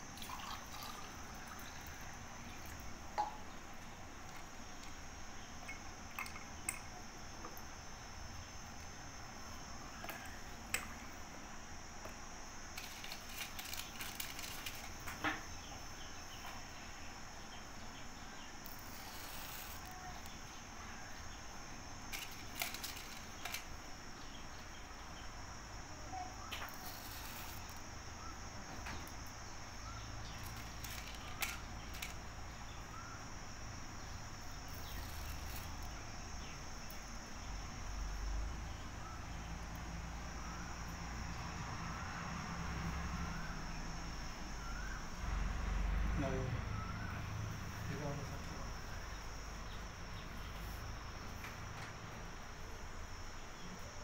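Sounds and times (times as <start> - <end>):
crickets chirring: 0.0 - 54.0.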